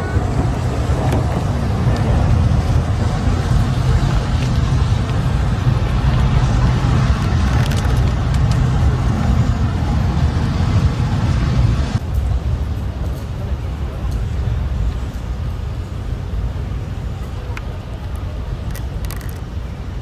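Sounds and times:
low outdoor rumble: 0.0 - 20.0.

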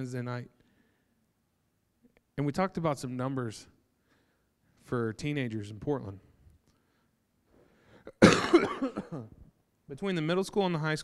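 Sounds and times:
man coughing: 8.0 - 9.5.

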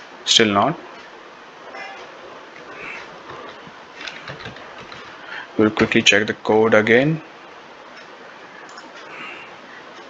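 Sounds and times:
steady background hiss: 0.0 - 10.0
computer keyboard keys tapping: 3.2 - 5.2.

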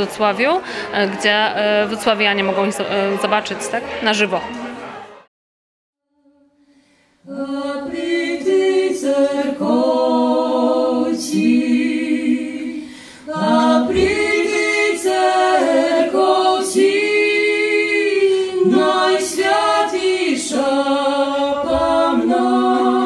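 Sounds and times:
a cappella harmony singing: 6.2 - 23.0.

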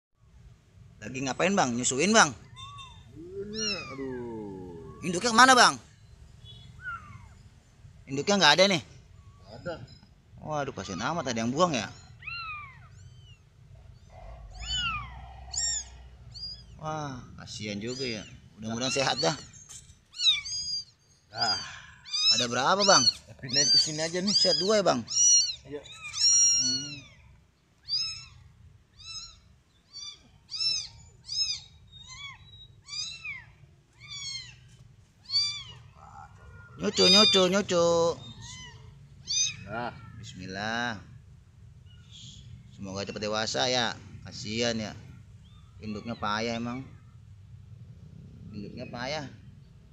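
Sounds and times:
kitten mewing: 2.4 - 5.6, 14.1 - 19.5, 20.1 - 40.3.

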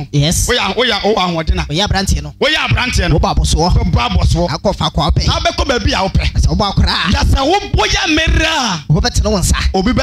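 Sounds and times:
background music with bass: 0.0 - 10.0
man preaching into a microphone: 0.0 - 10.0.

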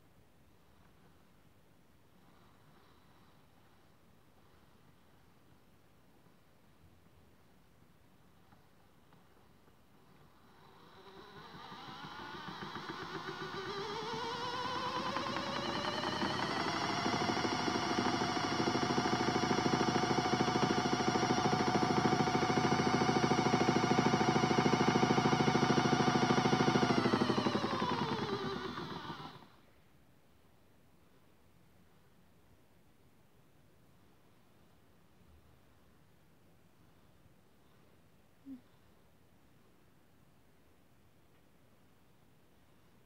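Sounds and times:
toy washing machine motor whine: 10.5 - 29.6.

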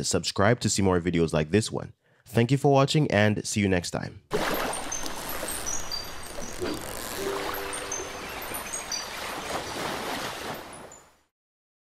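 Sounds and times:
surf and rushing water: 4.3 - 11.3
high bird-like chirps: 4.9 - 9.9.

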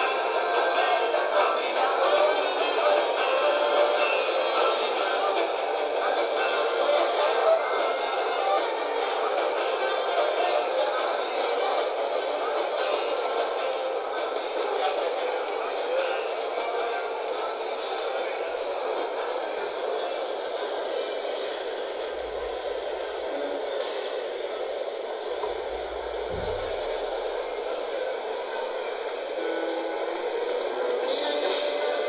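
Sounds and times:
muffled din of competition hall: 0.0 - 32.0
low thump: 26.3 - 27.1.

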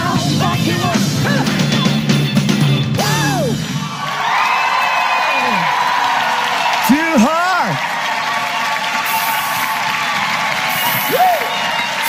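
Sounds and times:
audience applauding: 3.4 - 12.0.

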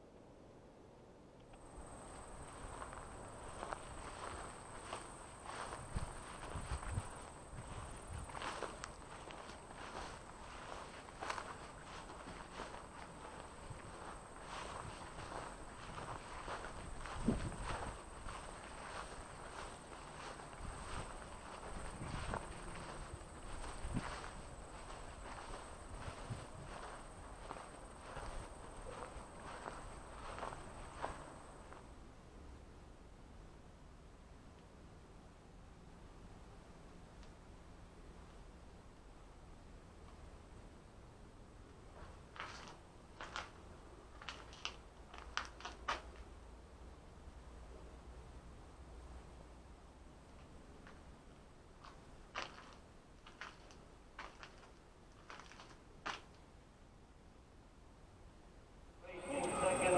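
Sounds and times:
footsteps through dry grass: 1.6 - 31.9, 42.0 - 46.0, 51.8 - 56.3, 59.0 - 59.9.

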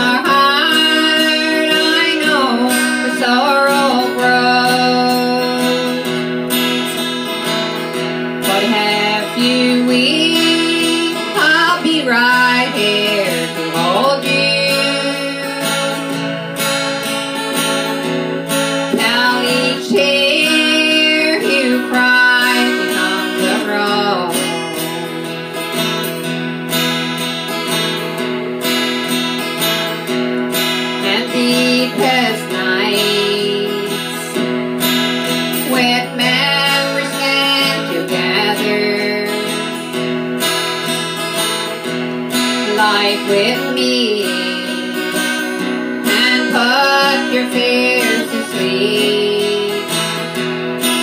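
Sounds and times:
woman singing: 0.0 - 6.9, 8.2 - 26.1, 30.6 - 40.8, 41.6 - 51.0
acoustic guitar strumming: 0.0 - 51.0.

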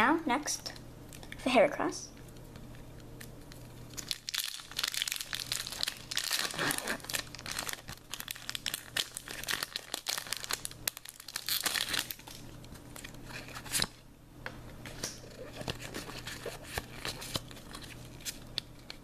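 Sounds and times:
foil wrapper crinkling and tearing: 3.2 - 14.0, 15.0 - 19.0
cards being handled: 14.8 - 19.0.

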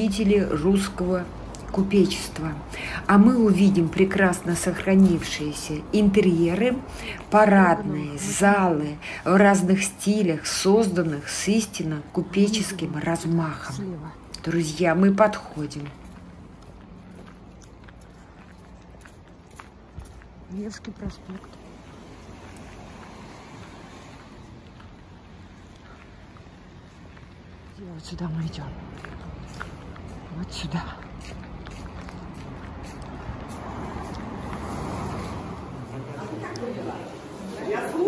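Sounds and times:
distant traffic hum: 0.0 - 38.0
passing cars rumbling: 20.9 - 38.0.

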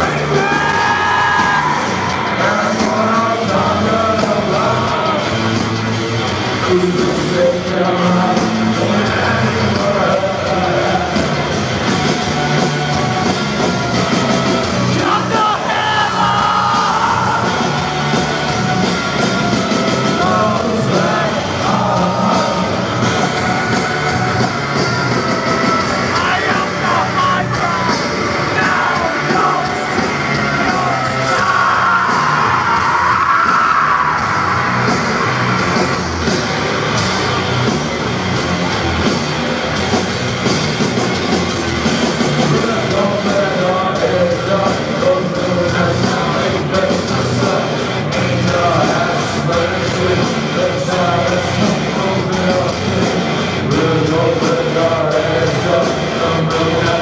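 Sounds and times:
yelled and sung vocals: 0.0 - 39.0, 39.6 - 57.0
heavy rock band playing: 0.0 - 57.0.

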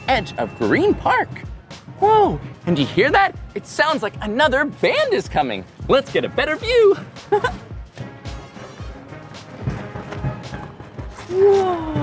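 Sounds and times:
bass drum beat: 0.0 - 3.6, 5.3 - 12.0.

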